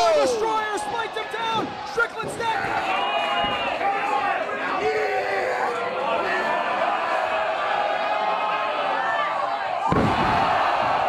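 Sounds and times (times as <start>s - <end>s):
crowd voices: 0.0s - 11.0s
wrestlers thudding on ring mat: 9.9s - 11.0s.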